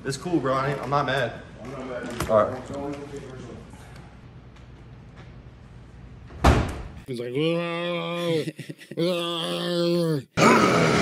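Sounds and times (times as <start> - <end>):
door slamming: 6.3 - 7.0
man's drawn-out vocal sound: 7.2 - 11.0.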